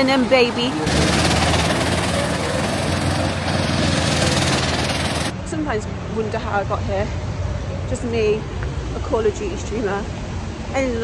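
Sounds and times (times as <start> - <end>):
go-kart engines droning: 0.0 - 5.3.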